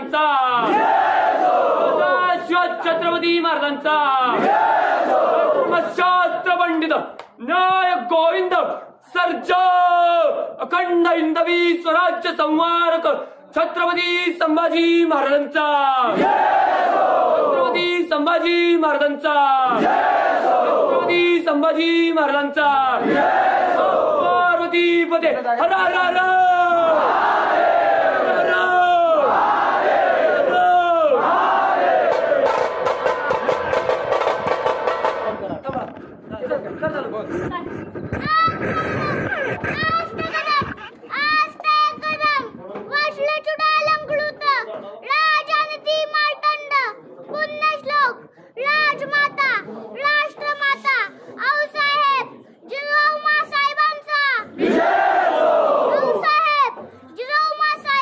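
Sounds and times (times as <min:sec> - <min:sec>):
crowd shouting slogans in unison: 0:00.6 - 0:02.5, 0:04.3 - 0:05.9, 0:16.1 - 0:17.8, 0:19.6 - 0:21.2, 0:22.9 - 0:24.6, 0:25.8 - 0:35.2, 0:54.5 - 0:56.4.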